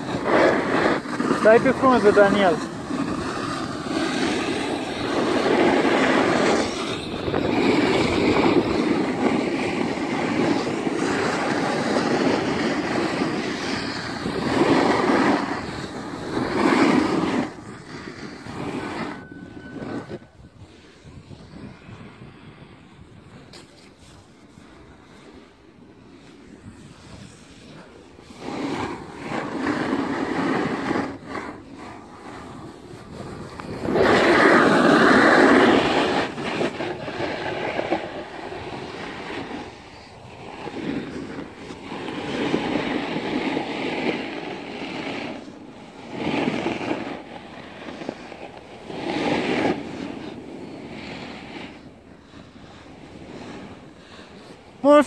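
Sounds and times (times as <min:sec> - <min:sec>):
skis sliding on snow: 0:00.0 - 0:55.0
wind on microphone: 0:00.0 - 0:55.0.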